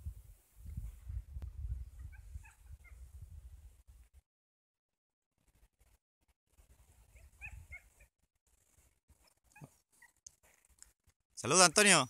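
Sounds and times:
wind buffeting microphone: 0.0s - 4.0s, 7.0s - 7.9s.

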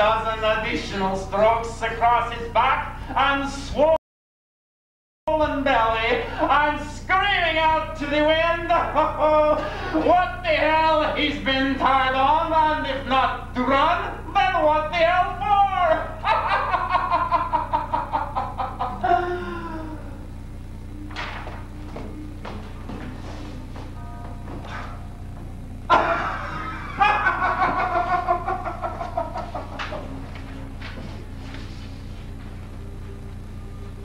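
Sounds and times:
low hum: 5.3s - 34.0s
man crying out: 8.4s - 10.5s, 18.6s - 20.3s
faint held musical tones: 28.2s - 34.0s.

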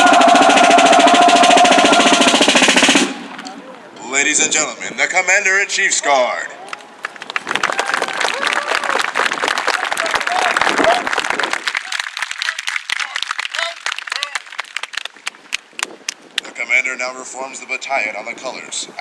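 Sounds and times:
audience applauding: 6.7s - 15.9s.

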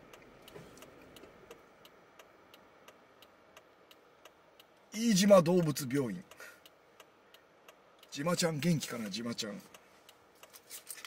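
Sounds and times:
turn signal ticking: 0.0s - 10.6s.

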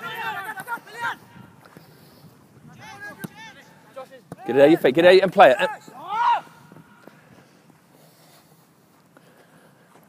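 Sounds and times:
man shouting: 0.0s - 1.2s, 4.4s - 6.6s.

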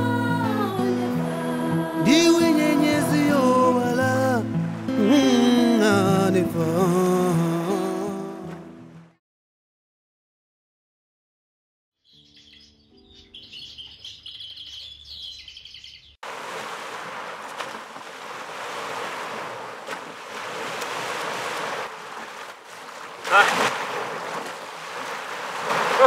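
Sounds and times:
lake waves: 0.0s - 9.1s, 16.2s - 26.0s
wind: 0.0s - 9.2s, 12.1s - 26.0s
birds chirping: 12.0s - 16.2s.

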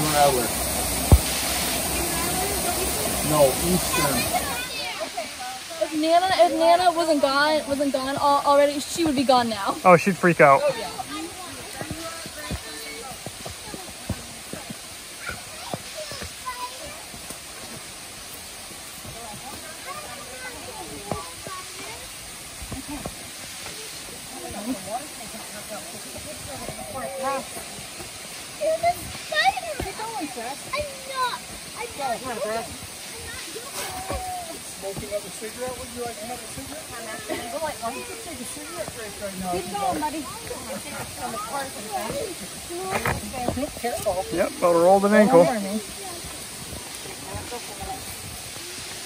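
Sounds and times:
background hiss: 0.0s - 49.0s.

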